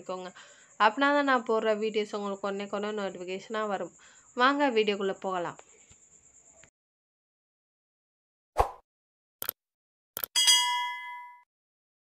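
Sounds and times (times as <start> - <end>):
bright bell ding: 10.4 - 11.5.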